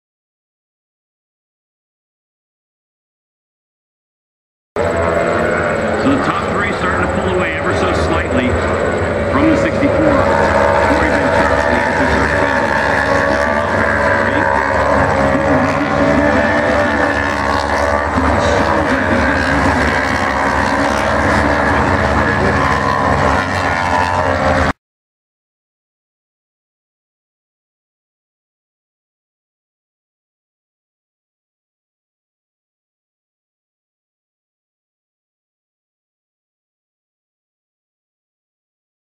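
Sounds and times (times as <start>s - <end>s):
racing motorcycle engines: 4.8s - 24.8s.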